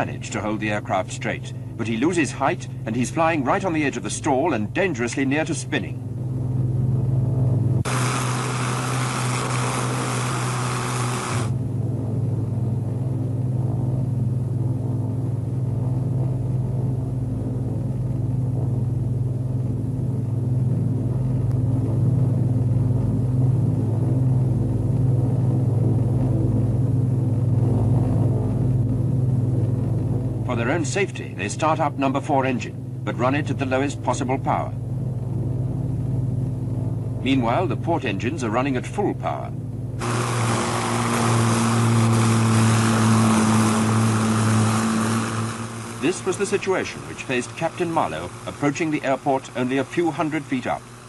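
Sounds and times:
piston engines droning: 0.0s - 51.0s
hiss: 7.9s - 11.5s.

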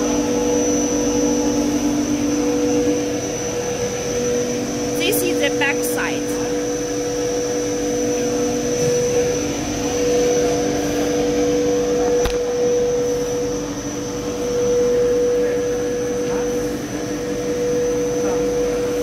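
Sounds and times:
machine droning with whining tones: 0.0s - 19.0s.

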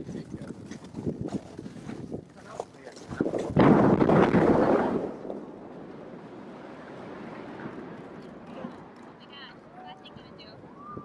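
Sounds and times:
explosive demolition blast: 3.2s - 8.0s.

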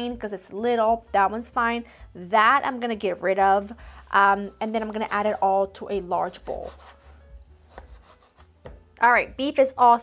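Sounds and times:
knife slicing meat on cutting board: 6.4s - 8.7s.

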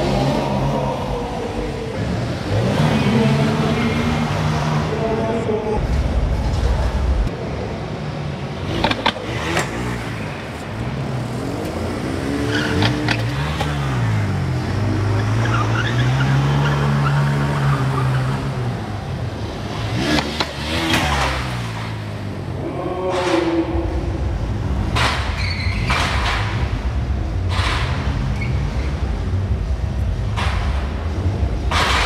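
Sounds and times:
motorcycle engine revving: 0.0s - 7.3s, 8.6s - 32.0s.

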